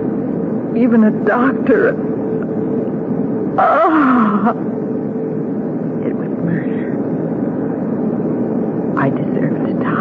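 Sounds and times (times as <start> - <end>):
airliner engines droning in cabin: 0.0 - 10.0
dialogue: 0.7 - 10.0.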